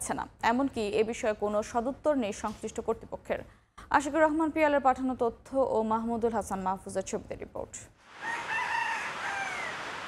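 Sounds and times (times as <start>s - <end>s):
outdoor hiss: 8.0s - 10.0s
rooster crowing: 8.1s - 10.0s.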